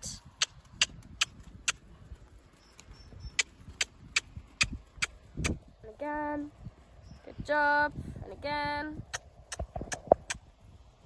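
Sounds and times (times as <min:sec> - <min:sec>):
horse trotting on grass: 0:00.3 - 0:05.8.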